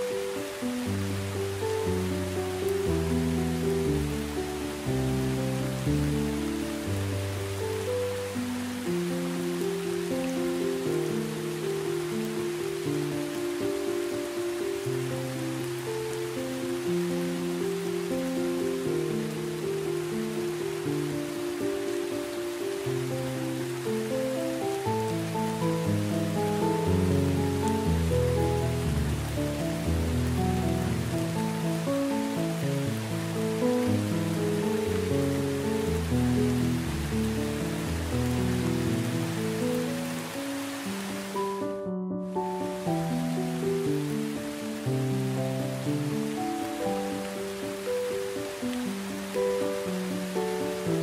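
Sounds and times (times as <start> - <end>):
gentle instrumental melody: 0.0 - 51.0
heavy rain: 0.0 - 51.0.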